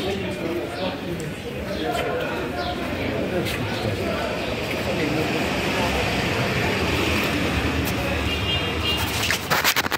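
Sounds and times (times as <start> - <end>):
people's voices: 0.0 - 9.5
traffic hum and road noise: 0.0 - 9.9.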